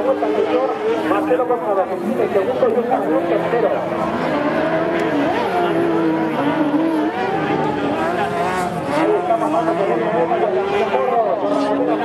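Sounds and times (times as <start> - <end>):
buggy engines revving: 0.0 - 12.0.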